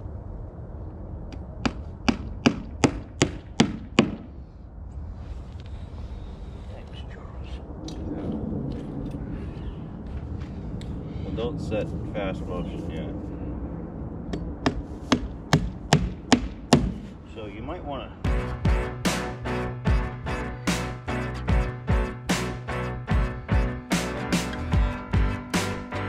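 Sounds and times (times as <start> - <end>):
hammer driving nail into wood: 1.6 - 4.3.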